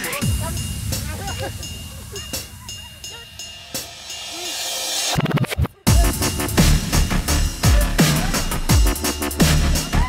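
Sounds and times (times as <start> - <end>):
people shouting and calling: 0.0 - 4.7, 9.6 - 10.0.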